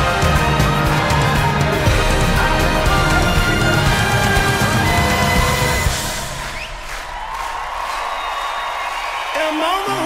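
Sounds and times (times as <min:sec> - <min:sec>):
live pop band music: 0:00.0 - 0:06.6.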